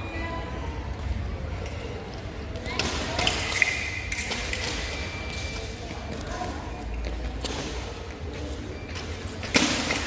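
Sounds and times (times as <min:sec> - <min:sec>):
voices in a hall: 0:00.0 - 0:10.0.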